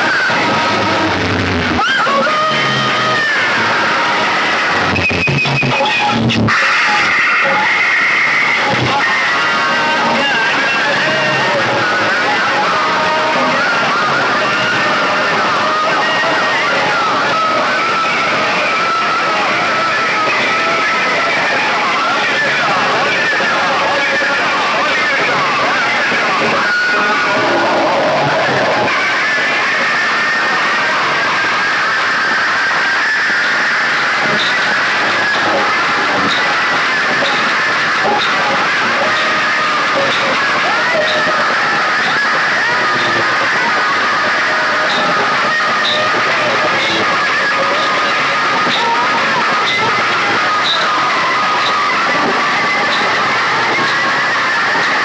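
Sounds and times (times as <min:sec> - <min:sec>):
distorted loudspeaker noise: 0:00.0 - 0:55.0.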